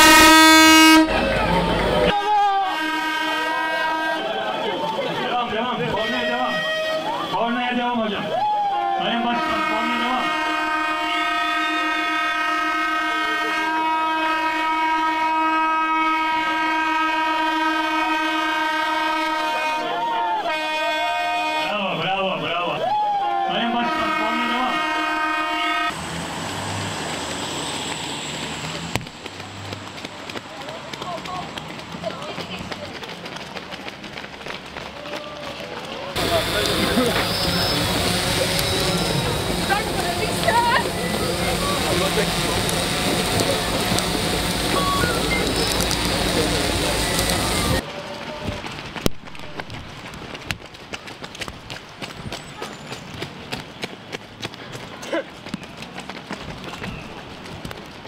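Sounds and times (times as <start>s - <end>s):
start horn blast: 0.0s - 4.6s, 5.8s - 7.7s, 9.0s - 21.9s, 23.5s - 26.1s, 36.2s - 47.8s
crowd noise: 0.0s - 26.0s, 26.9s - 58.0s
rain hiss: 25.9s - 28.9s, 36.2s - 47.8s.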